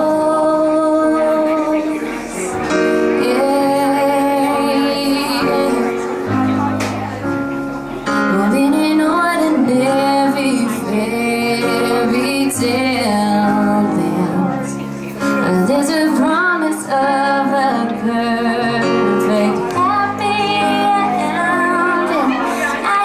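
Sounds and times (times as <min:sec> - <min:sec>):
woman singing into a microphone: 0:00.0 - 0:06.7, 0:08.1 - 0:23.0
instrumental accompaniment: 0:00.0 - 0:23.0.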